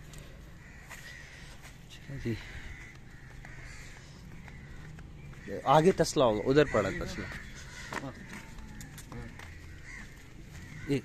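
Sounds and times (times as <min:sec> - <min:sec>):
crows cawing: 0:00.0 - 0:11.0.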